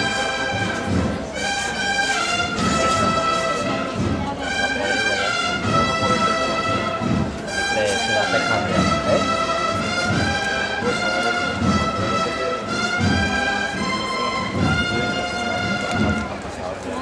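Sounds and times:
cornets playing a slow march: 0.0 - 17.0
crowd chatter: 0.0 - 17.0
drum beats: 0.0 - 17.0.

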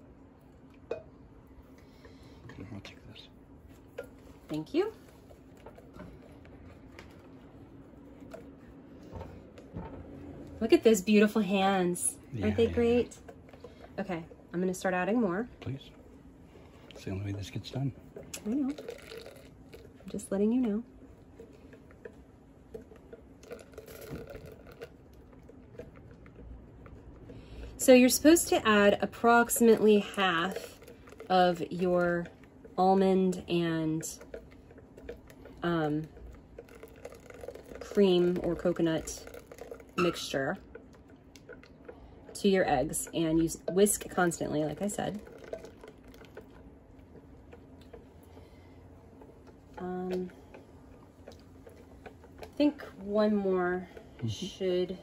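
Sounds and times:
whisk clicking in glass bowl: 28.0 - 48.1.

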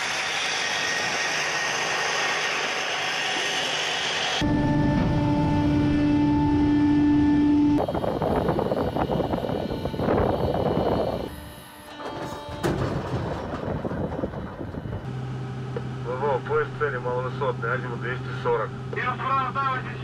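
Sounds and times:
heavy vehicle machinery drone: 0.0 - 20.0
rumbling mechanical noise: 0.0 - 20.0.

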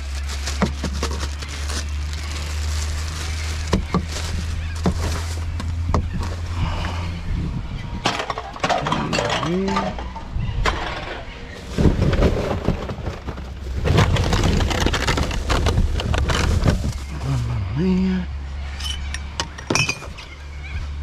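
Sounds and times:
plastic bags rustling: 0.0 - 6.8, 11.6 - 17.5
bottles and containers clinking: 8.0 - 11.0, 18.8 - 20.2.

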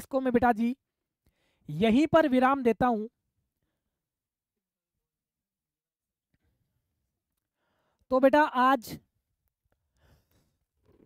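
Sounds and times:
faint breath: 1.3 - 1.7, 7.4 - 8.1, 9.9 - 10.7.

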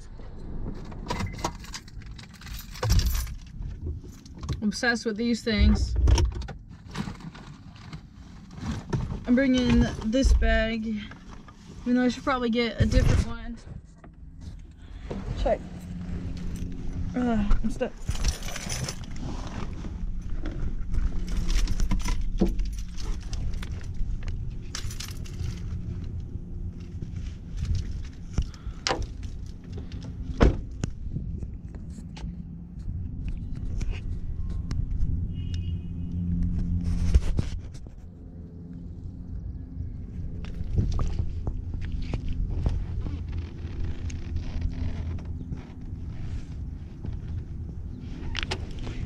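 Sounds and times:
low hum in car cabin: 0.0 - 49.0
low steady rumble: 0.0 - 49.0
woman speaking: 4.6 - 6.0, 9.3 - 11.2, 11.8 - 13.7, 15.2 - 15.6, 17.1 - 18.1
bag and clothing rustling: 14.2 - 24.2.

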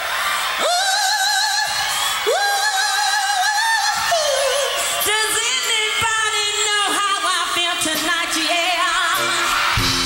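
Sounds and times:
woman singing with vibrato: 0.6 - 9.7
band playing: 9.0 - 10.0.

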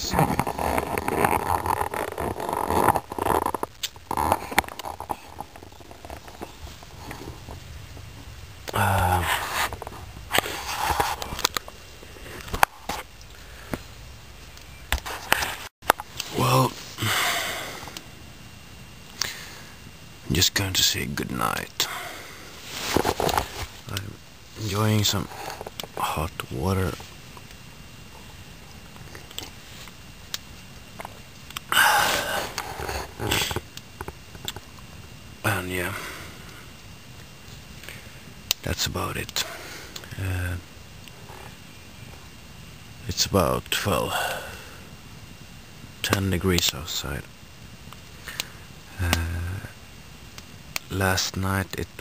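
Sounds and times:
campfire crackling: 0.0 - 18.1, 21.4 - 51.0.

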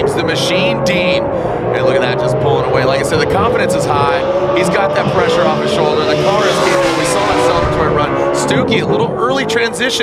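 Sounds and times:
drift car engines revving: 0.0 - 10.0.

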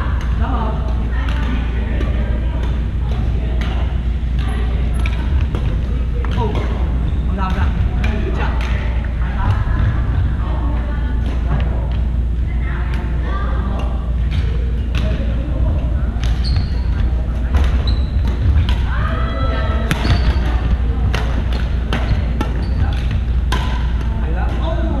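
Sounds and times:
low hum: 0.0 - 25.0
sneakers squeaking: 0.2 - 25.0
racket striking shuttlecock: 17.5 - 18.9, 19.8 - 24.6.

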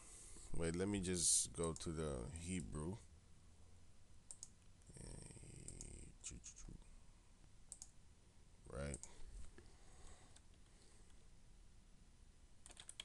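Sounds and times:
computer mouse clicks: 4.3 - 4.6, 5.6 - 6.0, 7.7 - 8.0, 8.9 - 9.6, 12.6 - 13.0
man's voice murmuring: 4.9 - 6.9.

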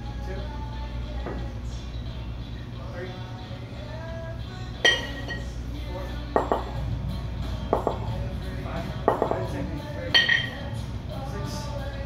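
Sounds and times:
metal kettlebells clinking: 4.9 - 5.5, 10.1 - 10.6.

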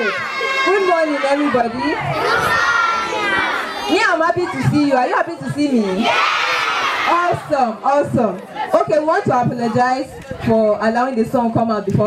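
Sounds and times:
crowd of girls shouting and cheering: 0.0 - 5.0, 5.8 - 7.6.

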